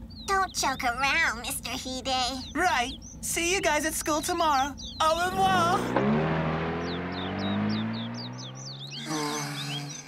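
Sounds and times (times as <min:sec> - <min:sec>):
birds chirping: 0:00.0 - 0:10.0
car engine pulling away: 0:05.2 - 0:10.0.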